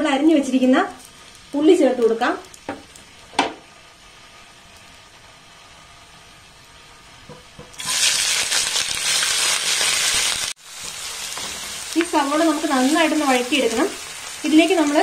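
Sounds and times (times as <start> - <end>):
onions sizzling in a pan: 0.0 - 15.0
spices sizzling in oil: 0.0 - 15.0.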